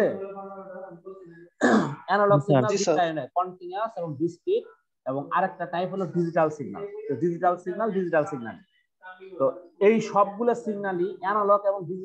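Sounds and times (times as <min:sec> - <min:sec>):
man clearing throat: 0:01.6 - 0:02.1
man's voice holding a vowel: 0:02.1 - 0:03.2.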